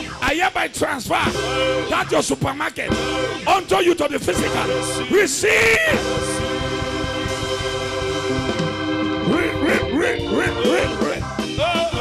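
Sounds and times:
held keyboard chords: 1.2s - 12.0s.

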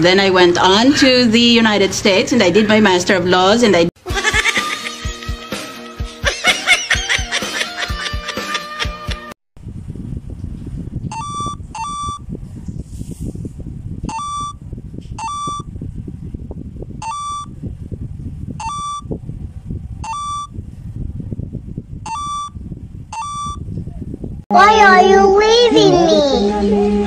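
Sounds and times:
low rumbling noise: 9.6s - 27.0s
electronic beeps: 14.1s - 14.6s, 15.2s - 15.7s, 17.0s - 17.5s, 18.6s - 19.1s, 20.0s - 20.5s, 22.1s - 23.6s.

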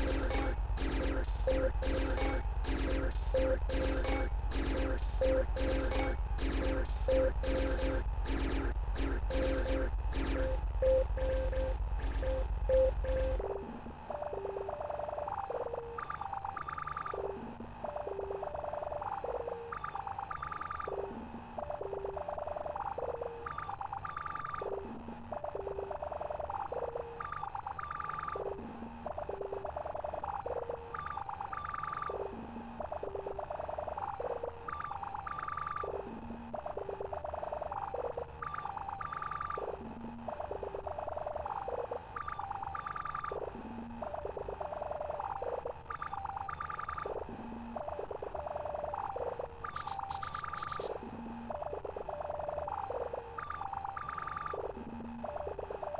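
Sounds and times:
looping synth blip melody: 0.0s - 13.4s.

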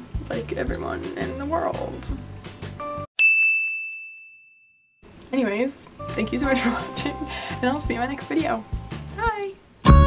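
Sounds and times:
small bell ding: 3.2s - 5.0s.

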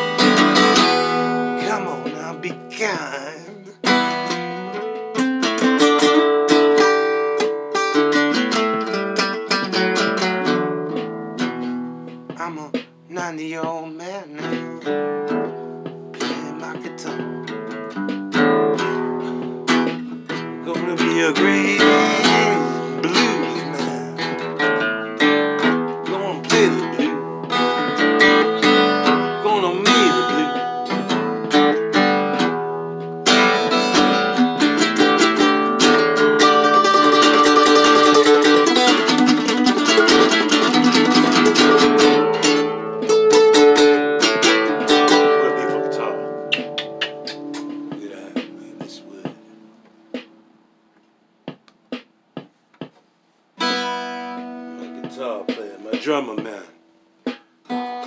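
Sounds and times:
plucked guitar notes: 0.0s - 50.6s, 53.6s - 58.0s
acoustic guitar strumming: 0.0s - 58.0s.

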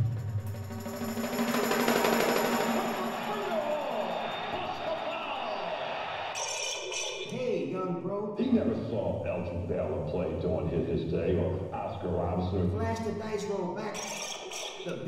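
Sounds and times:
processed chopped voice sounds: 13.9s - 15.0s.

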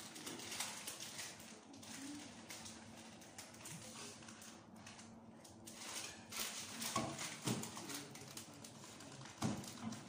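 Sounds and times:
cans and bottles clattering on shelves: 6.2s - 7.9s.

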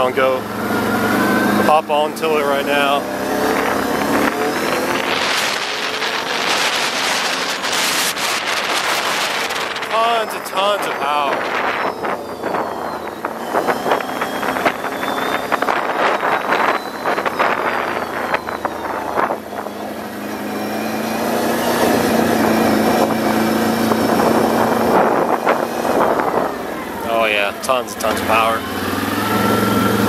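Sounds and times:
atv engine under throttle: 0.0s - 30.0s
wind buffeting microphone: 0.4s - 30.0s.

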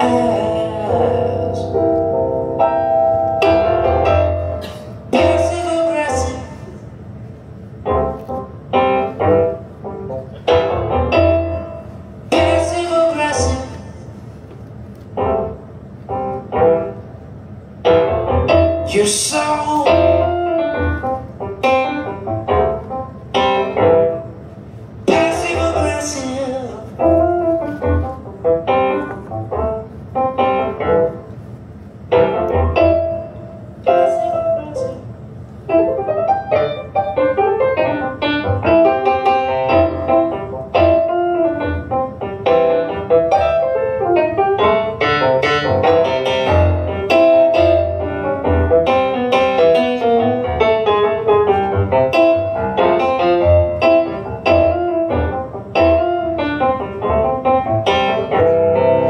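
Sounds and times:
piano chords: 0.0s - 59.0s.

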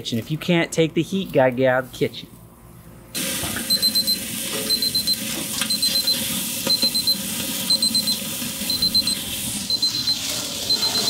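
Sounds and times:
high-pitched thermometer alarm beeps: 3.6s - 11.0s.

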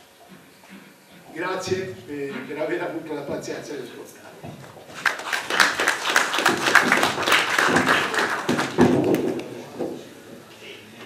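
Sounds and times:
crowd applauding: 4.9s - 9.6s
thump: 8.8s - 10.0s.

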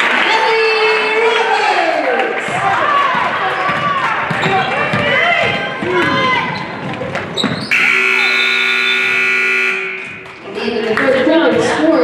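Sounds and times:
voices echoing in hall: 0.0s - 12.0s
basketball dribbling: 2.5s - 10.2s
shoes squeaking on hardwood: 4.3s - 9.2s
scoreboard buzzer long tone: 7.7s - 10.2s.

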